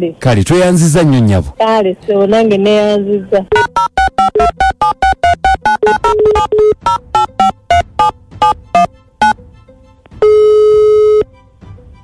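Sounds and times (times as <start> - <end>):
background music: 3.4 - 12.0
loud electronic tone: 3.5 - 9.4, 10.2 - 11.2.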